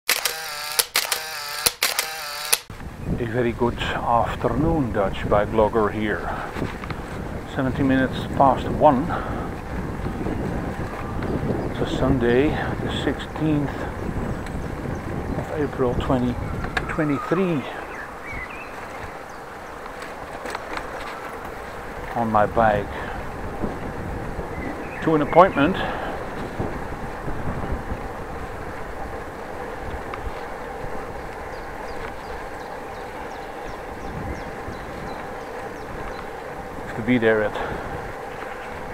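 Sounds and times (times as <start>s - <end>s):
camera motor whirr: 0.1s - 2.7s
camera shutter click: 0.1s - 2.7s
bicycle tyres on path: 0.1s - 38.9s
wind rush: 2.7s - 38.9s.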